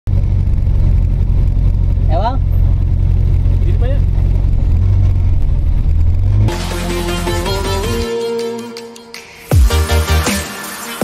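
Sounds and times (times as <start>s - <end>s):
van engine idling: 0.1s - 8.1s.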